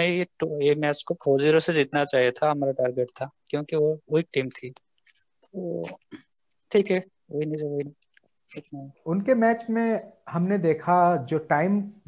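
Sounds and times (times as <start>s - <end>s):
man speaking hesitantly: 0.0s - 4.8s.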